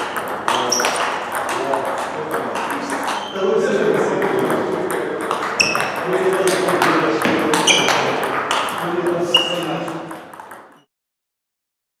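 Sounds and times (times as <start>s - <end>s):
table tennis ball clicking: 0.0s - 3.2s, 4.2s - 10.8s.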